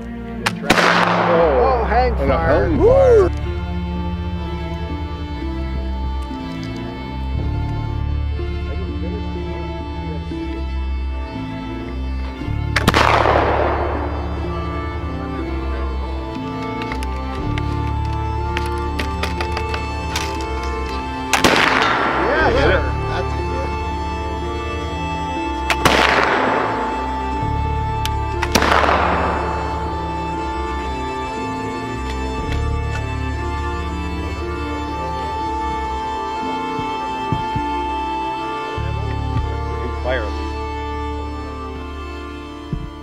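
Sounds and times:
background music: 0.0s - 43.0s
rifle shot with echo: 0.4s - 1.8s, 12.8s - 14.5s, 21.3s - 22.3s, 25.7s - 26.9s, 28.4s - 30.0s.

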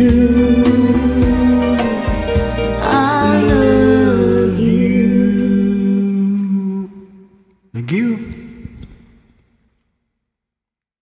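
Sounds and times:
soft backing track: 0.0s - 9.2s.

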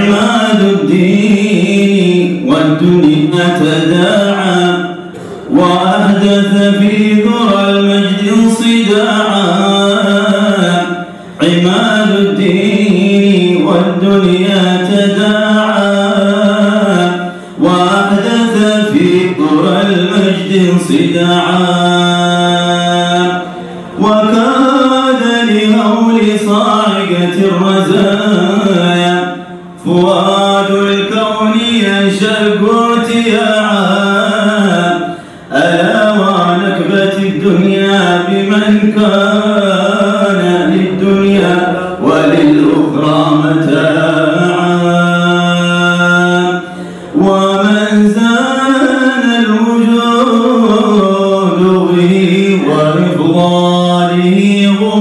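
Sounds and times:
man chanting: 0.0s - 55.0s.

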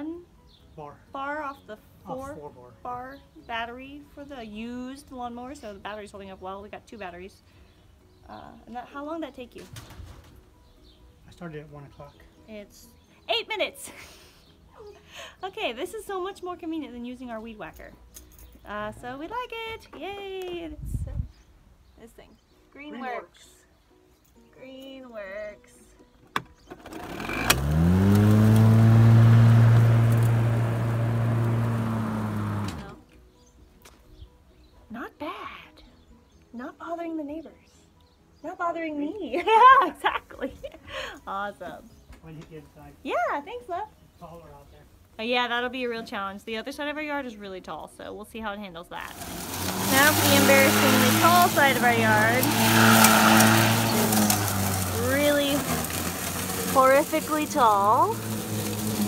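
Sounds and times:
electric lawn mower running: 26.6s - 33.0s, 49.1s - 59.0s.

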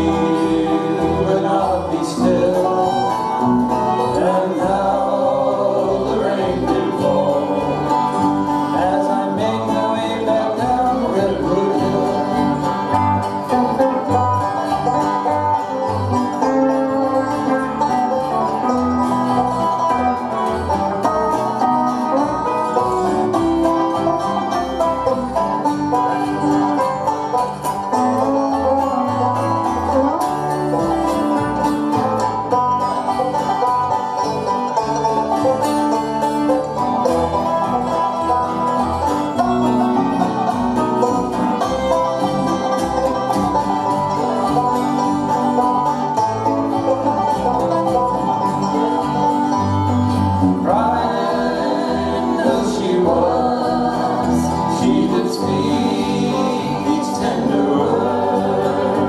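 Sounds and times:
acoustic guitars picking: 0.0s - 59.0s
banjo picking: 0.0s - 59.0s
fiddle: 0.0s - 59.0s
upright bass line: 0.0s - 59.0s.

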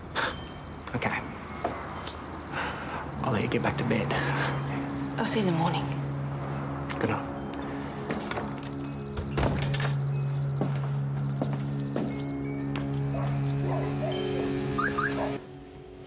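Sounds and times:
sustained music tones: 3.0s - 16.0s
thunks: 8.1s - 10.0s.

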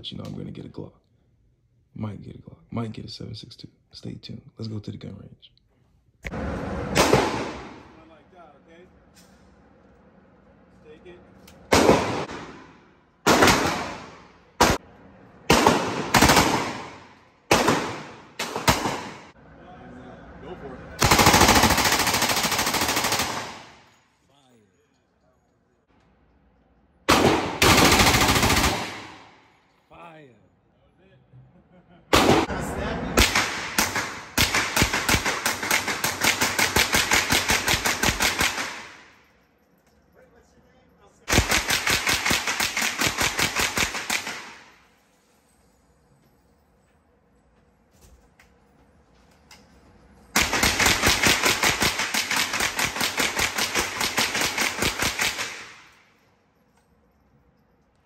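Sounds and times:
gunfire echo: 6.3s - 8.0s, 11.7s - 14.8s, 15.4s - 19.4s, 27.1s - 29.5s, 32.1s - 39.2s, 41.3s - 44.9s.

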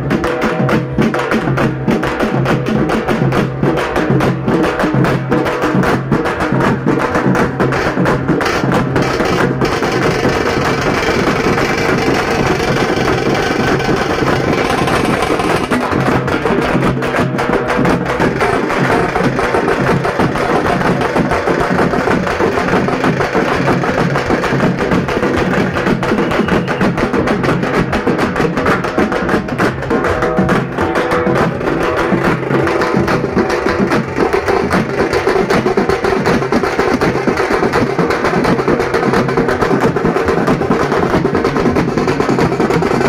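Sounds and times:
fast dense drumming music: 0.0s - 43.0s.

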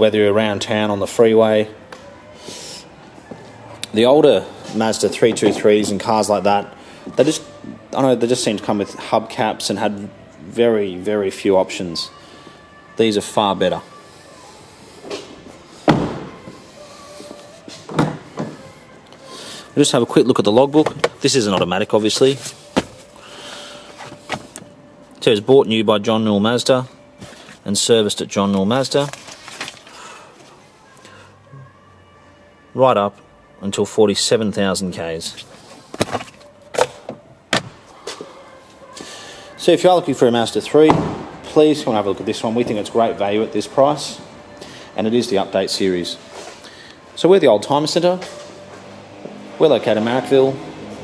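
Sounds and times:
car door shutting thud: 15.8s - 16.3s, 40.9s - 41.3s.

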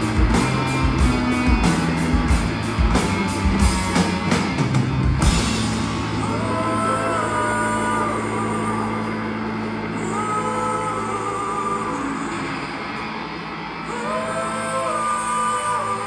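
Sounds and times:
low drone: 0.0s - 16.0s
sliding sustained guitar notes: 0.0s - 16.0s.

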